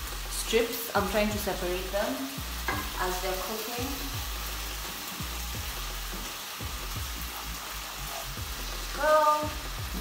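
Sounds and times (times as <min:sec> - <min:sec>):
bacon sizzling in a pan: 0:00.0 - 0:10.0.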